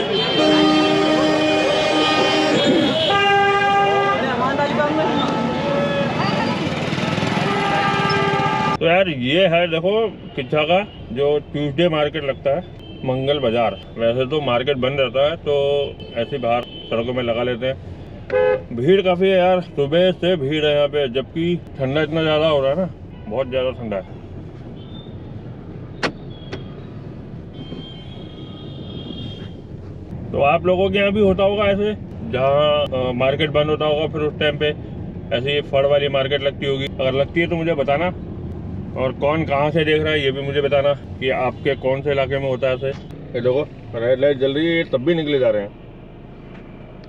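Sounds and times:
vehicle horn held note: 0.0 - 4.2
street traffic: 0.0 - 47.0.

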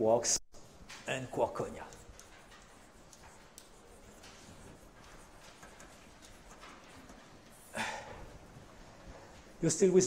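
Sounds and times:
chalk tapping on blackboard: 0.6 - 9.6
chalk scraping on blackboard: 0.6 - 9.7.

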